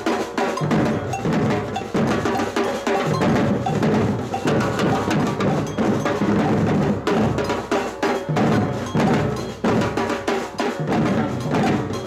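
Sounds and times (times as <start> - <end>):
drum ensemble playing: 0.0 - 12.0.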